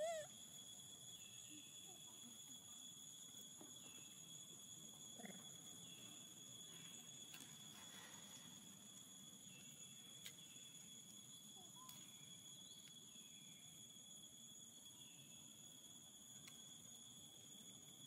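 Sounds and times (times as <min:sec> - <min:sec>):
faint chirps: 0:00.0 - 0:18.0
high-pitched insect drone: 0:00.0 - 0:18.0.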